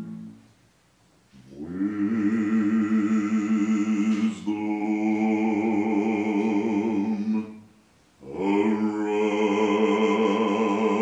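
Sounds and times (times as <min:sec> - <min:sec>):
unaccompanied liturgical chant: 0:00.0 - 0:00.4, 0:01.4 - 0:11.0.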